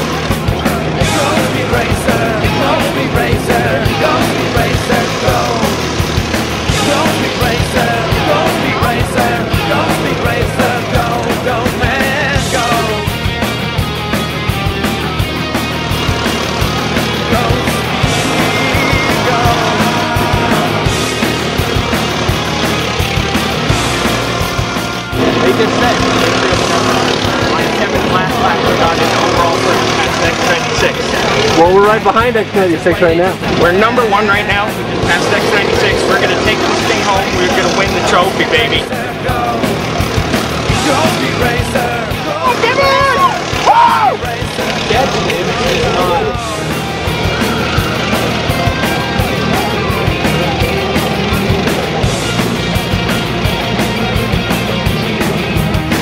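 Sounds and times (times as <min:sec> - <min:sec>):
go-kart engine running: 0:00.0 - 0:56.0
rock music with drum beat: 0:00.0 - 0:56.0
excited shouting voices: 0:00.3 - 0:05.8, 0:06.6 - 0:13.1, 0:16.6 - 0:21.8, 0:40.6 - 0:52.2.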